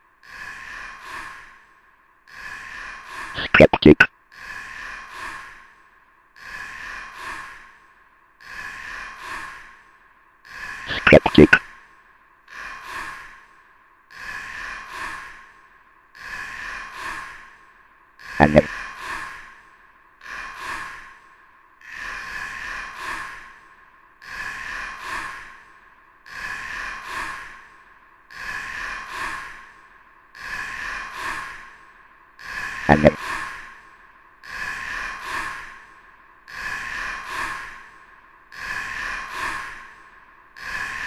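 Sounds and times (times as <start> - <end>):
pitched vocal burst: 3.4 - 4.1, 10.9 - 11.6, 18.4 - 18.7, 32.9 - 33.2.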